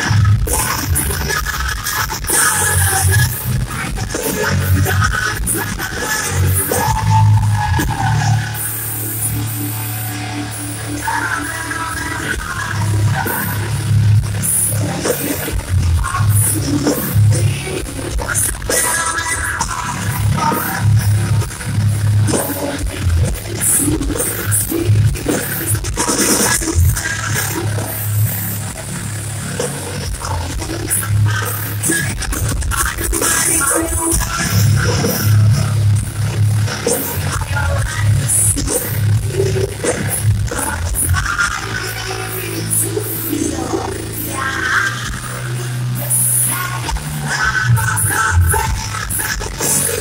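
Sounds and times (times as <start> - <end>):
live metal band: 0.0 - 50.0.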